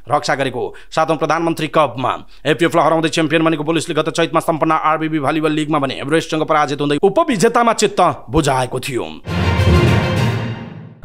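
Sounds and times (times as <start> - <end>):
narrator reading: 0.0 - 10.1.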